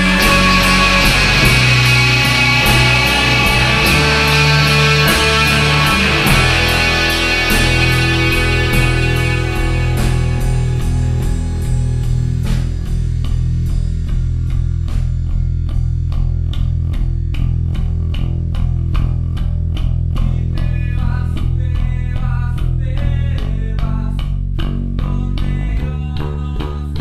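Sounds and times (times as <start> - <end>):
light drums: 0.0 - 17.5
bass guitar: 0.0 - 27.0
electric guitar: 0.0 - 27.0.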